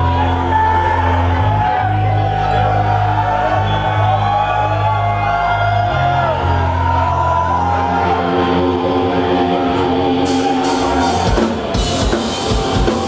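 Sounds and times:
bass guitar chords: 0.0s - 13.0s
distorted electric guitars: 0.0s - 13.0s.

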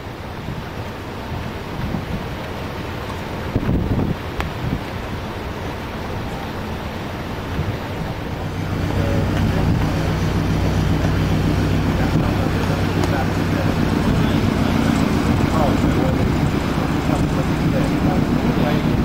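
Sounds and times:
wind noise on microphone: 0.0s - 2.5s, 3.3s - 5.4s, 7.3s - 19.0s
churning water: 0.0s - 19.0s
diesel engine humming: 0.0s - 19.0s.

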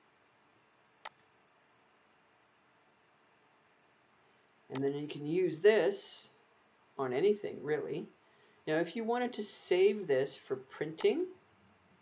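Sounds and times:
computer mouse click: 1.0s - 1.3s, 4.7s - 5.0s.

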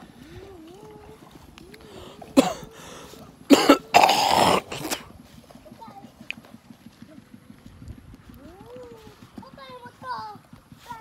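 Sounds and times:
faint child's voice: 0.1s - 3.2s, 5.6s - 6.3s, 8.3s - 11.0s
person coughing: 2.4s - 2.7s, 3.5s - 5.1s.

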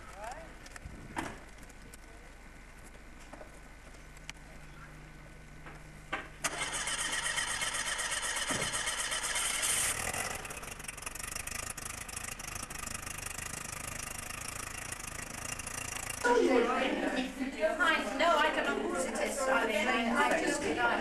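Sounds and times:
engine starting and idling: 6.4s - 16.3s.

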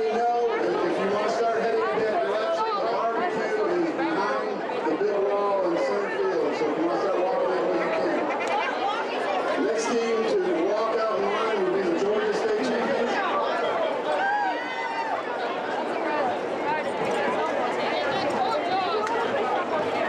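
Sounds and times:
young people chattering and calling out: 0.0s - 20.0s.

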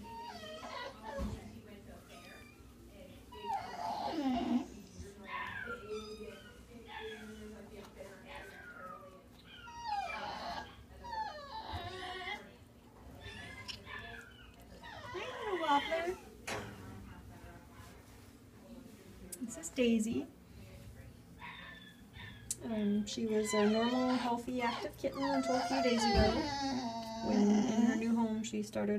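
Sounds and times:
animal whimpering and whining: 0.0s - 1.4s, 3.3s - 7.4s, 8.4s - 12.6s, 13.2s - 16.2s, 23.1s - 28.2s.

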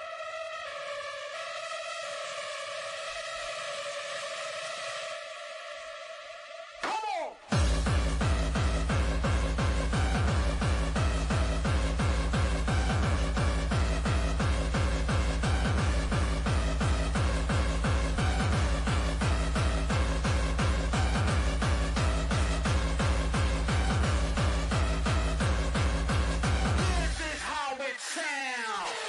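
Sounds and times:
hardcore dance music: 0.0s - 29.0s
hard kick drum: 6.9s - 27.4s.

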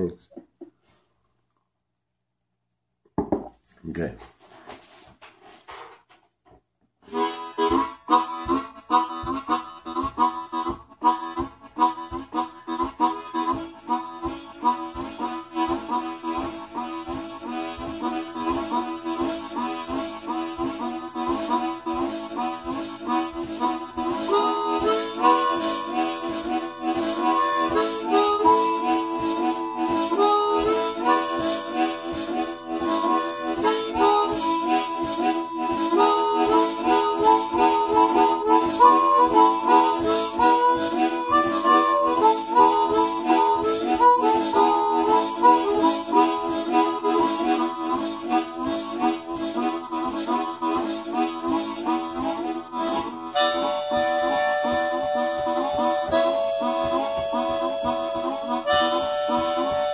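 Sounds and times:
harmonicas playing: 7.1s - 59.9s.

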